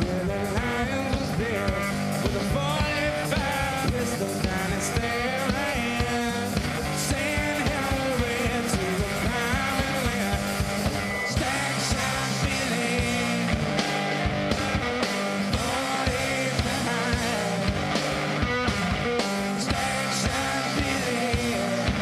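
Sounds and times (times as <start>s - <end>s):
distorted electric guitar: 0.0s - 22.0s
drum kit playing a driving beat: 0.0s - 22.0s.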